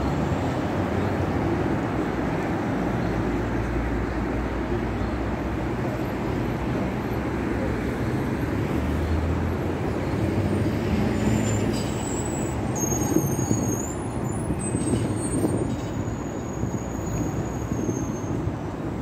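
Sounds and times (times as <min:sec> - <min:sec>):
street traffic rumble: 0:00.0 - 0:19.0
thin high squeal: 0:11.2 - 0:18.5.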